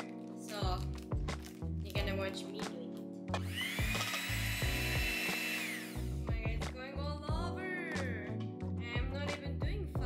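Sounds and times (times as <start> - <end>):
electric hand mixer whining: 3.4 - 6.2.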